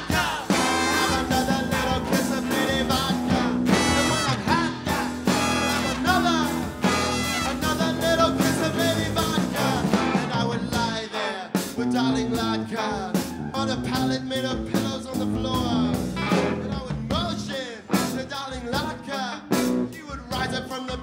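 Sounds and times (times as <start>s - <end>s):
bending lead guitar melody: 0.0s - 11.1s, 13.6s - 20.5s
live blues-rock band: 0.0s - 21.0s.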